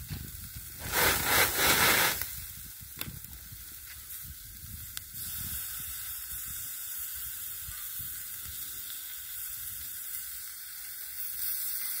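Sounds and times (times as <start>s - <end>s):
vegetables sizzling on griddle: 0.0s - 12.0s.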